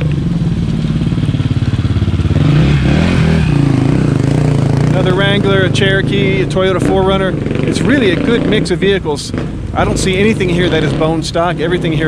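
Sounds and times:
dirt bike engine passing: 0:00.0 - 0:12.0.

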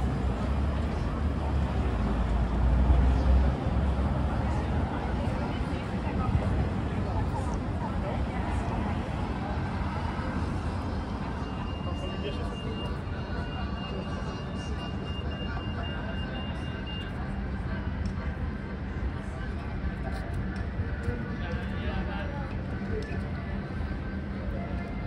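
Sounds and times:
passers-by talking: 0:00.0 - 0:25.0
traffic: 0:00.0 - 0:25.0.

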